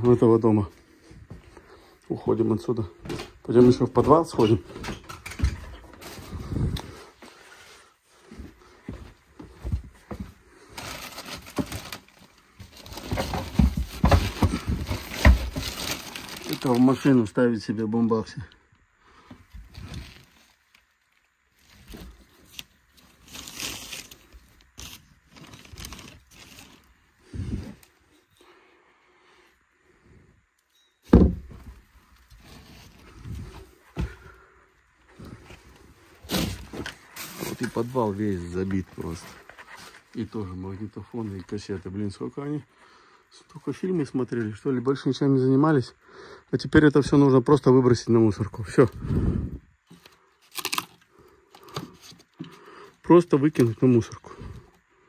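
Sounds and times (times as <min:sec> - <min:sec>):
cloth and plastic rustling: 0:03.1 - 0:08.5, 0:09.4 - 0:17.2, 0:19.3 - 0:28.3, 0:31.6 - 0:34.4, 0:35.1 - 0:41.6
plastic cases being handled: 0:10.7 - 0:17.1
heavy thumps and knocks: 0:13.0 - 0:15.8, 0:31.1 - 0:31.8.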